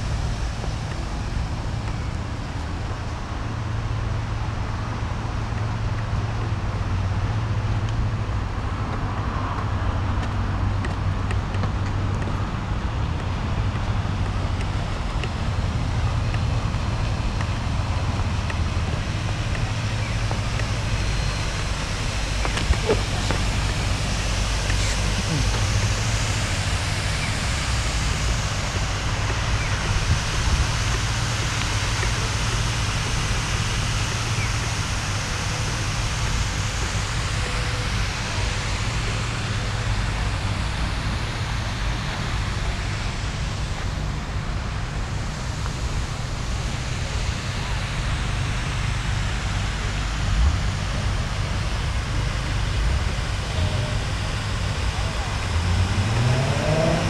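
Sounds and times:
constant low rumble: 0.0 - 57.0
fountain water jets splashing: 0.0 - 57.0.

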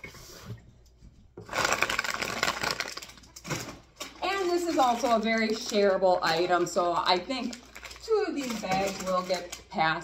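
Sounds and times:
plastic snack bags crinkling: 1.4 - 10.0.

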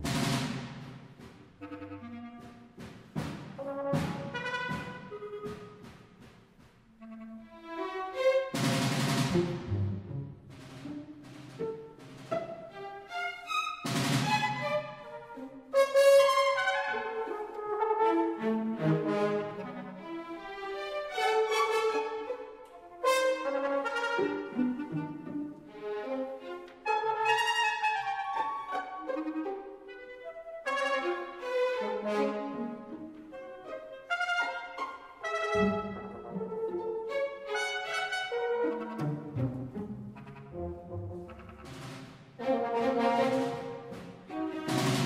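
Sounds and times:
brass strokes: 0.0 - 7.6
timpani strokes: 0.0 - 45.0.

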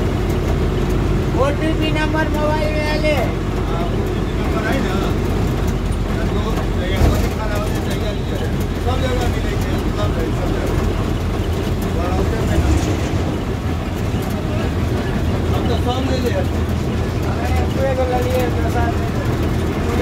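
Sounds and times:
vehicle engine and road rumble: 0.0 - 20.0
faint voices talking: 1.0 - 20.0.

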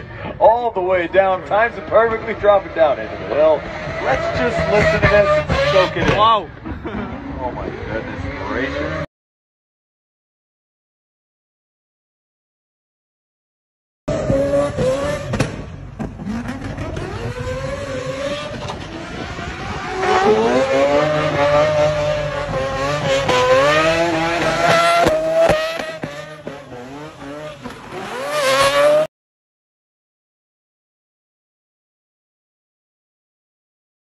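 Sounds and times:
car engine revving hard: 2.2 - 9.1, 14.1 - 29.1.

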